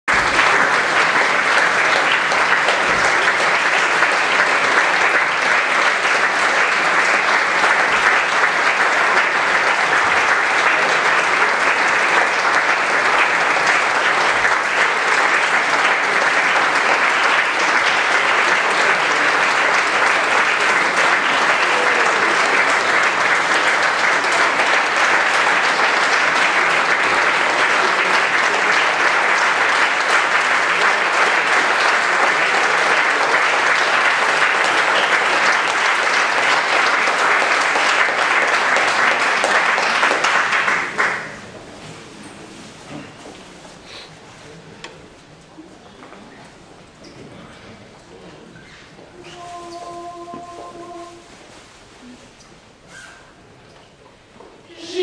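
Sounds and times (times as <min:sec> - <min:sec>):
audience applauding: 0:00.0 - 0:41.8, 0:48.6 - 0:51.2, 0:54.6 - 0:55.0.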